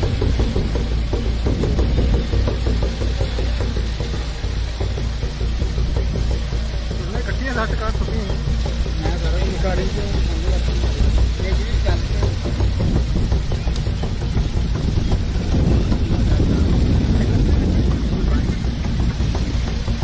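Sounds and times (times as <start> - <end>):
steady low rumble: 0.0 - 20.0.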